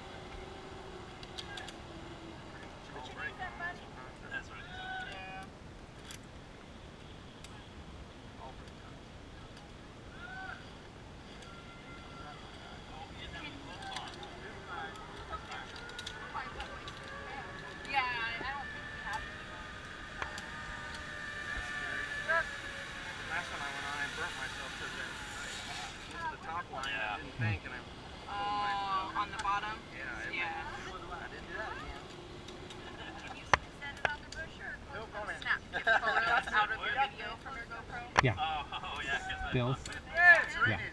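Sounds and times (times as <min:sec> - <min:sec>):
zip-line pulleys whining on cable: 0:00.0 - 0:06.2, 0:07.4 - 0:40.9.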